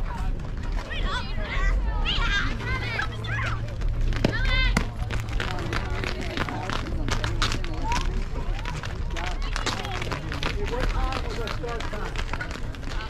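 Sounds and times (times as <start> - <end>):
girls calling and chanting: 0.0 - 6.5.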